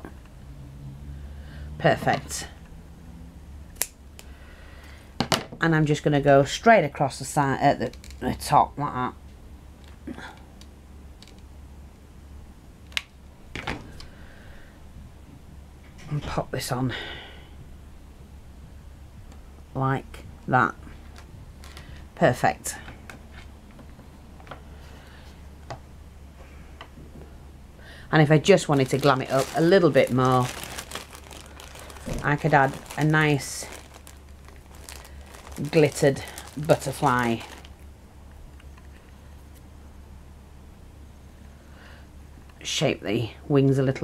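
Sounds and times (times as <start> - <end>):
steady low hum: 0.0 - 44.0
fabric rustling: 28.5 - 37.8.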